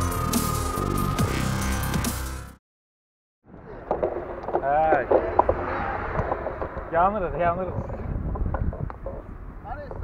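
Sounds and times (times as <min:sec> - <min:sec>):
wind buffeting microphone: 0:03.6 - 0:10.0.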